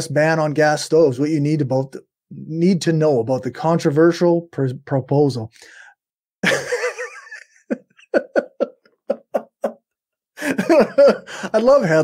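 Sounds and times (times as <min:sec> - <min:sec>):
man laughing: 0:06.4 - 0:12.0.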